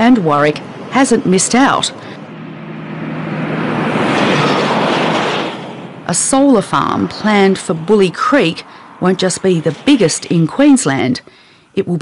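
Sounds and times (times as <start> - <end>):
vehicle driving past: 0.0 - 11.0.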